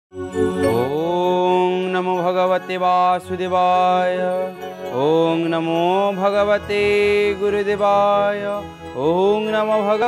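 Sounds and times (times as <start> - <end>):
man chanting: 0.6 - 10.0.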